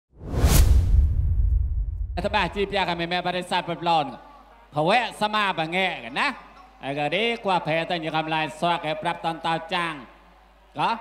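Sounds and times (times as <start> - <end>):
whoosh: 0.1 - 3.0
deep rumble: 0.2 - 2.9.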